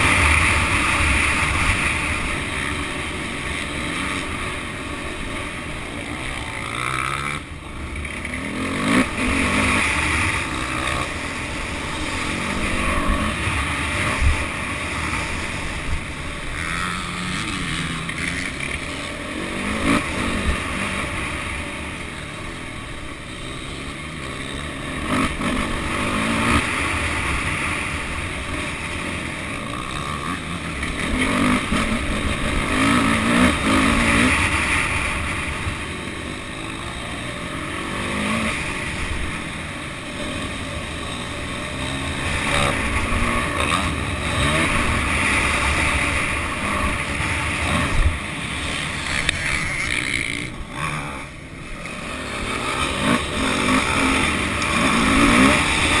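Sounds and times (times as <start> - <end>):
motocross bike engine revving: 0.0 - 56.0.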